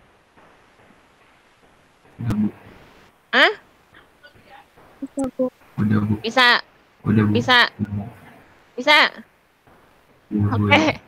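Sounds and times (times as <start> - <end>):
faint scattered sounds: 0.0 - 11.0.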